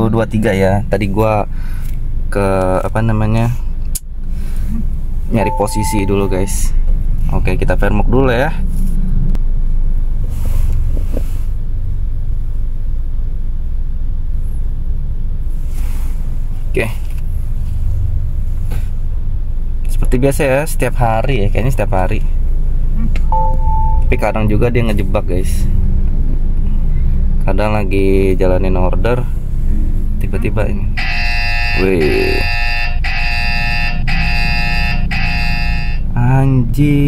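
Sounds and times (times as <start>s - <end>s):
car engine rumbling: 0.0s - 37.0s
phone electronic alarm tone: 5.4s - 6.6s, 23.3s - 24.1s, 31.0s - 36.0s.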